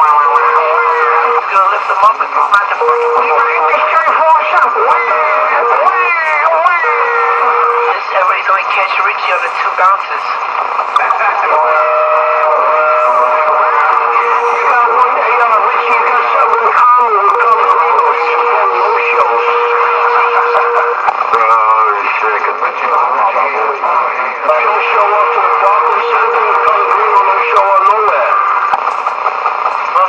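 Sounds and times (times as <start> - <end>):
voices over tinny speaker: 0.0 - 30.0.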